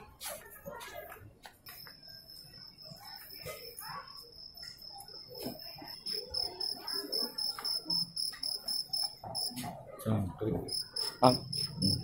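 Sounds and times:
faint murmur of voices: 0:00.0 - 0:12.0.

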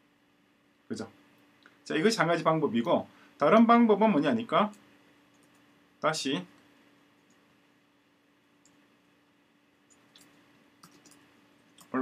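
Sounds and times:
computer keyboard keystrokes: 0:09.9 - 0:12.0.

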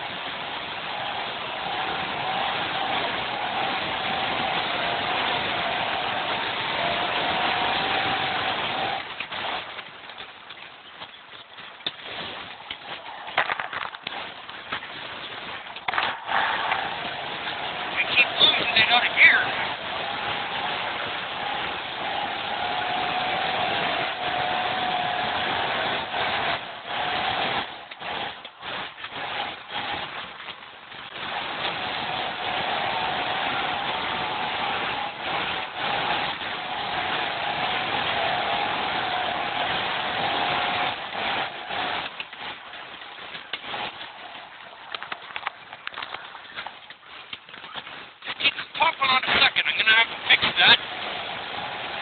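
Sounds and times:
car engine and road noise: 0:00.0 - 0:52.0.

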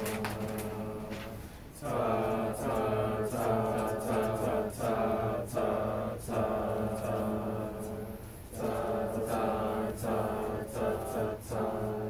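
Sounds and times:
group singing a cappella: 0:00.0 - 0:12.0.

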